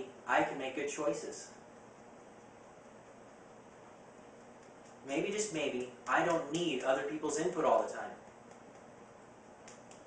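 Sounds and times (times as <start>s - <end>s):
fingertips tapping on hand: 4.3s - 10.0s.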